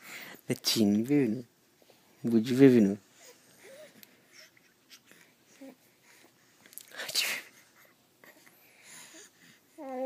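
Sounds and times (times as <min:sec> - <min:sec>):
infant breathing: 0:03.1 - 0:06.4, 0:07.3 - 0:10.0
infant cooing: 0:09.8 - 0:10.0.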